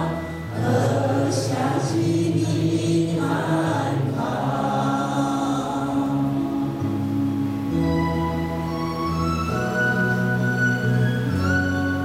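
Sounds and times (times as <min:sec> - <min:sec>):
choir singing slow song: 0:00.0 - 0:07.9.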